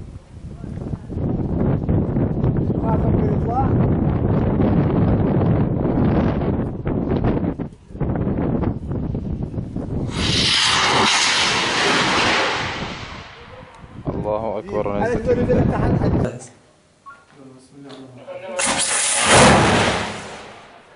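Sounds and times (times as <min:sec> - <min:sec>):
wind buffeting microphone: 0:00.0 - 0:16.3
rocket rushing hiss: 0:10.0 - 0:14.1, 0:18.6 - 0:20.9.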